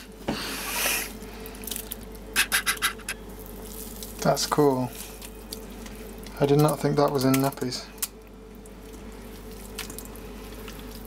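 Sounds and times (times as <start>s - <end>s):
wet squelches and drips: 1.4s - 2.2s, 5.0s - 11.0s
hands squeezing wet gel in water: 6.6s - 11.0s.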